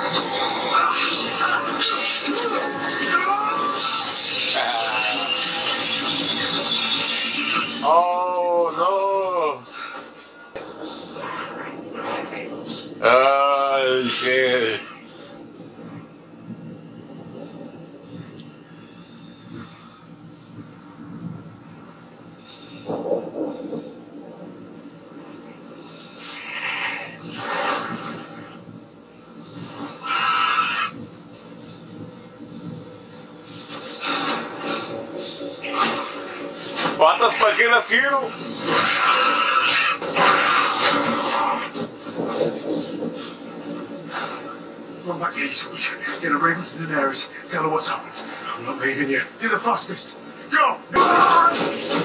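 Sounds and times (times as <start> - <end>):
battle scene noise: 0.0 - 52.0
creature screeching: 0.4 - 8.6, 26.4 - 27.2, 30.0 - 31.0, 38.8 - 41.7.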